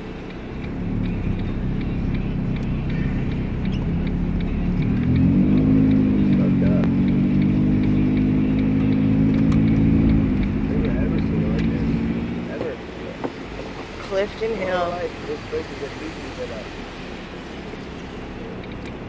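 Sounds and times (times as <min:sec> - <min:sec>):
car engine from inside cabin: 0:00.0 - 0:19.0
tyre noise on wet pavement: 0:00.0 - 0:19.0.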